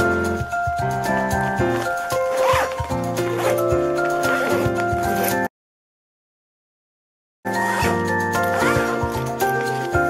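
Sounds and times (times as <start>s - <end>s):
background music with beat: 0.0s - 5.2s, 7.9s - 10.0s
backpack zipper pulled: 1.6s - 5.5s, 7.5s - 10.0s.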